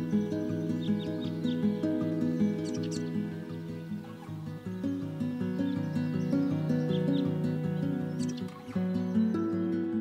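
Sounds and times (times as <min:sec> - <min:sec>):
background music: 0:00.0 - 0:10.0
high bird chirps: 0:00.1 - 0:04.4, 0:05.4 - 0:09.7.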